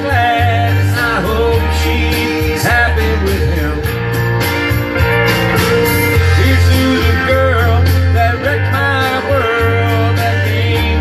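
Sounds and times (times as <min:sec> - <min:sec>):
guitar: 0:00.0 - 0:11.0
steady bass line: 0:00.0 - 0:11.0.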